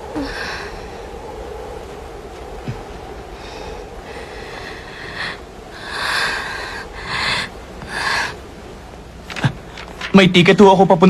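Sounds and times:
person breathing hard: 0.1 - 1.1, 3.4 - 8.4.

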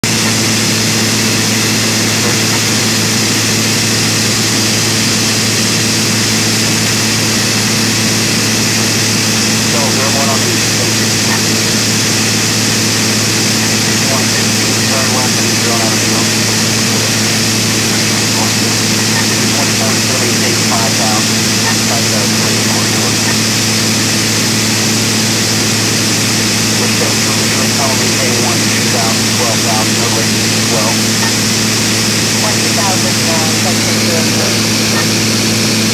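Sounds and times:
aircraft engine and propeller drone: 0.0 - 35.9.

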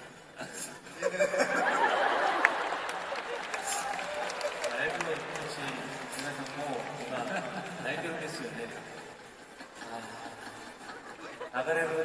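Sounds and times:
man speaking: 11.4 - 12.0.

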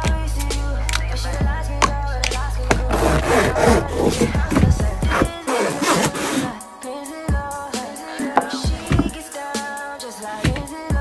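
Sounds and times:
background music: 0.0 - 11.0
zipper closing pouch: 2.9 - 6.5.

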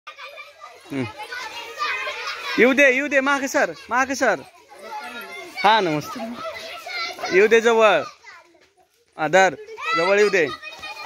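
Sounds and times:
children calling and chattering: 0.1 - 11.0.

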